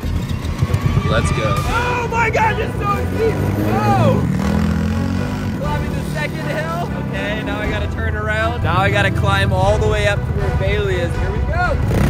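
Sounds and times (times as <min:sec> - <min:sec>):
small engine running: 0:00.0 - 0:07.0.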